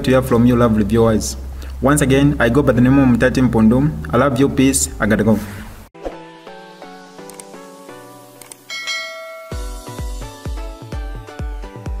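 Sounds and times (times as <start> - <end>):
bright bell ding: 8.7 - 10.2
electronic beat with heavy bass: 9.5 - 12.0.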